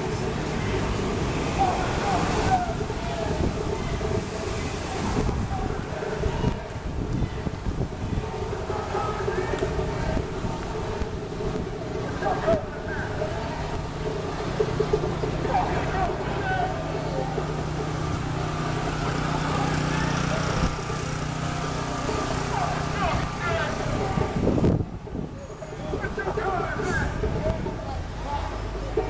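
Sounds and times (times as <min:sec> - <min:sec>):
people's voices: 0:00.0 - 0:29.0
vehicles passing: 0:00.0 - 0:29.0.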